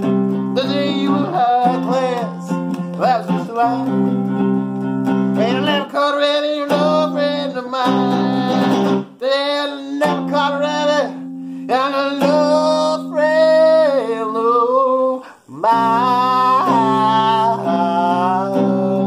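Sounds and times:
man singing: 0.0s - 19.0s.

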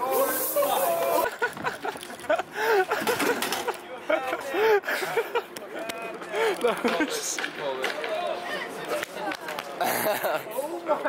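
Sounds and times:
people shouting and whooping: 0.0s - 2.0s.

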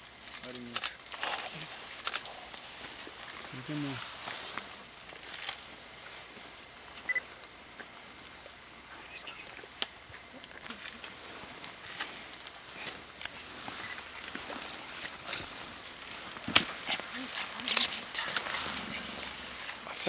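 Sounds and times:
leafy stems crackling and rustling: 0.0s - 20.0s
sharp snaps of stems: 14.2s - 16.9s.

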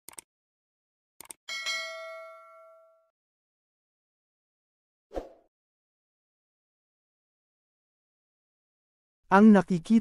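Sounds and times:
short clicks: 0.1s - 0.3s, 1.2s - 1.4s
bright bell-like ding: 1.5s - 3.1s.

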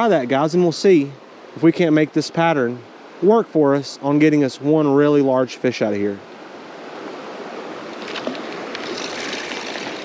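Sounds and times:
creek water rushing: 0.0s - 10.0s.

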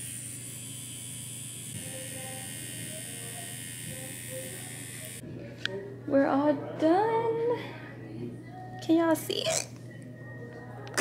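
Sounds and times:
tattoo machine humming: 0.0s - 5.2s
faint background music: 1.7s - 11.0s.

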